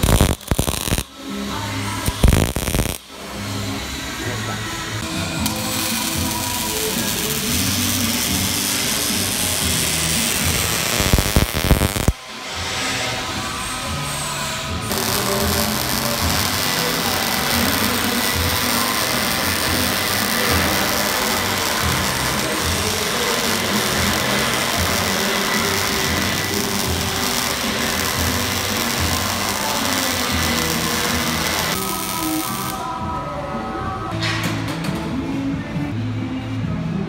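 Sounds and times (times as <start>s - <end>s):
welder arc crackling: 0.0s - 1.1s, 2.0s - 3.1s, 5.3s - 12.2s, 14.8s - 32.8s.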